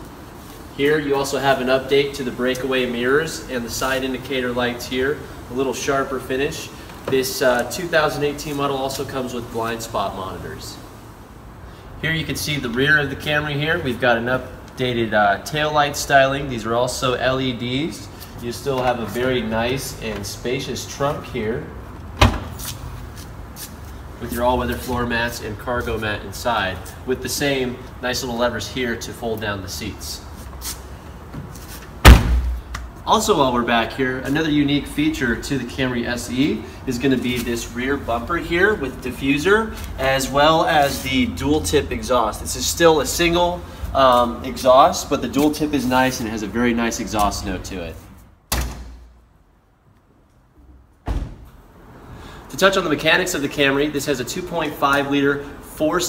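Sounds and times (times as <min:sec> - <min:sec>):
car body thud: 0:22.2 - 0:22.6, 0:32.0 - 0:32.8, 0:48.5 - 0:49.2, 0:51.0 - 0:51.6
car trunk lid slamming shut: 0:22.2 - 0:22.6, 0:32.0 - 0:32.6, 0:51.0 - 0:51.5.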